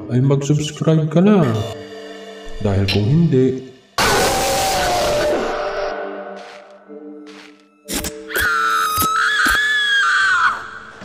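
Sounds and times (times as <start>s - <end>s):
woman screaming: 8.3s - 10.9s.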